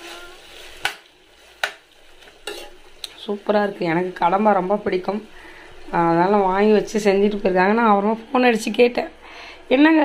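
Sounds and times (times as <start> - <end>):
faint sizzle: 0.0 - 10.0.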